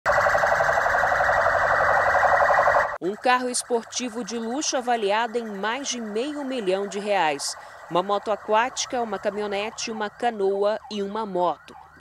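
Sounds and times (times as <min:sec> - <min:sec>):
police siren warbling: 0:00.1 - 0:12.0.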